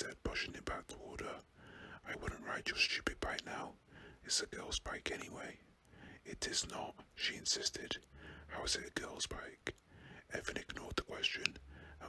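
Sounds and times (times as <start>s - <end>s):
man whispering: 0.0s - 12.0s.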